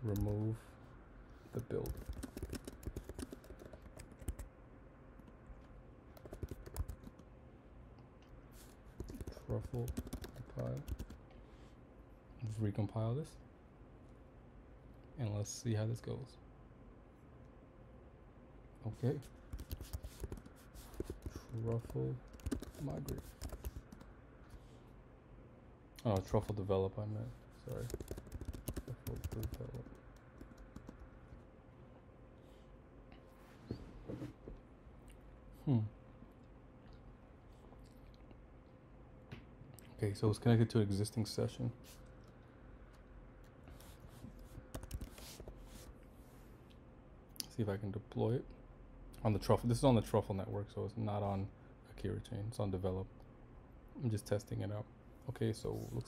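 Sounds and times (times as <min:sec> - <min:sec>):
low steady hum: 0:00.0 - 0:56.0
typing on a computer keyboard: 0:00.1 - 0:00.4, 0:01.8 - 0:04.5, 0:06.2 - 0:07.2, 0:09.0 - 0:11.2, 0:19.5 - 0:24.1, 0:27.7 - 0:31.0, 0:44.7 - 0:45.2.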